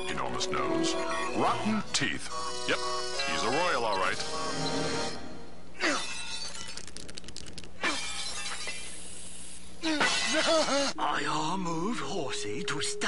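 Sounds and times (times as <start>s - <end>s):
rapid clatter: 6.5s - 7.8s.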